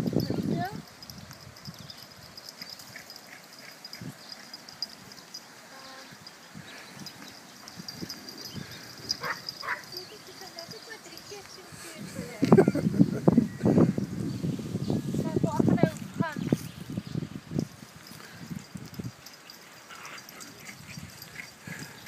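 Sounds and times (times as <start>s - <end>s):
small dogs yapping: 7.5s - 10.5s.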